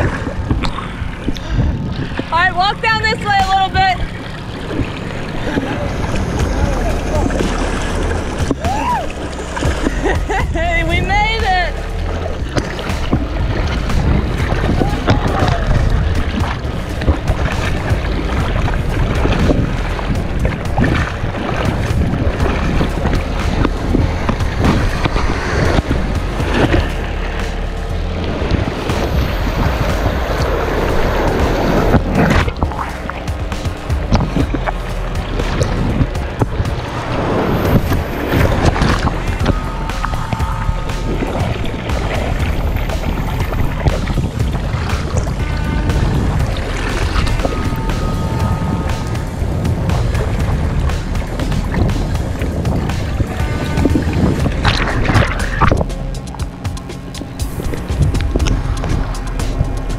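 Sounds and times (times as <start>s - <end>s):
background music: 0.0s - 59.9s
water sloshing and splashing: 0.0s - 59.9s.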